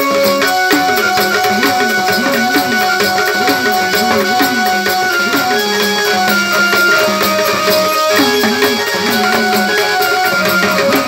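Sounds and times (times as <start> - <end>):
hand drum with swooping pitch: 0.0 - 11.0
held melody notes: 0.0 - 11.0.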